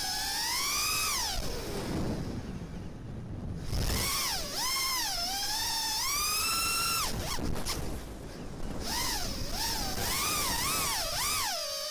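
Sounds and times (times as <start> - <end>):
drone motors whining: 0.0 - 2.8, 3.6 - 11.9
wind rush: 0.3 - 11.5.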